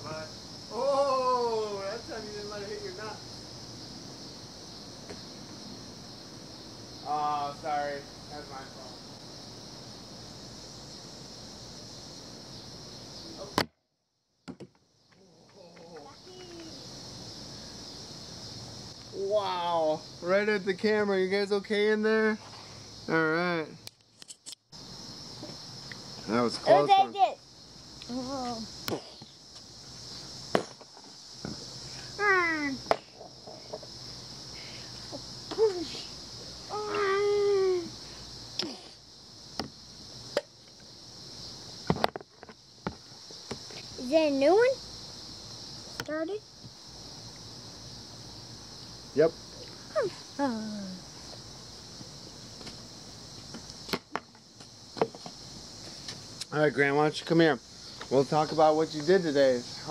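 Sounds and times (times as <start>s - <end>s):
steady high hiss: 0.0s - 59.9s
frisbee hitting camera: 30.5s - 31.6s
boy vocalising: 36.7s - 37.9s.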